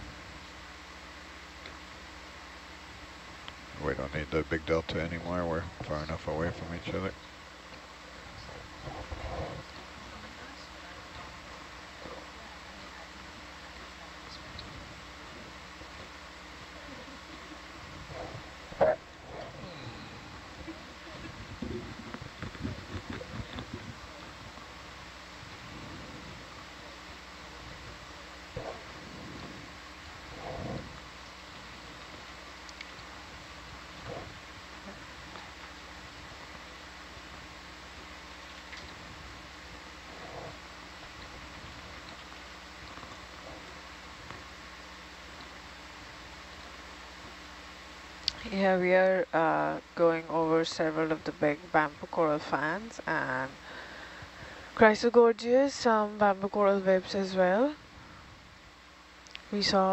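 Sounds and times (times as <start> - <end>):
steady electrical hum: 0.0 - 59.9
faint clicks and crackles: 5.8 - 47.4, 59.2 - 59.5.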